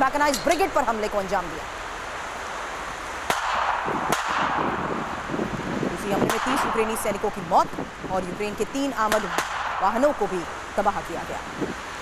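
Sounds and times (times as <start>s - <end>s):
steady rushing noise: 0.0s - 12.0s
gunshot cracks: 3.3s - 4.8s, 9.1s - 9.8s.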